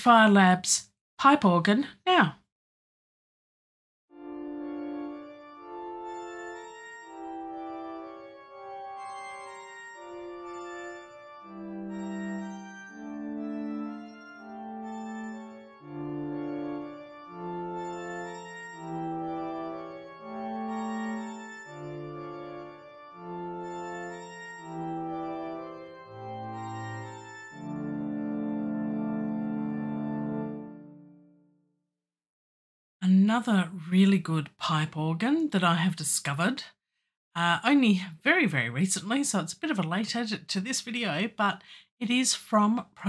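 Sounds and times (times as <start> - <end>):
pipe organ chords: 4.2 - 31.4.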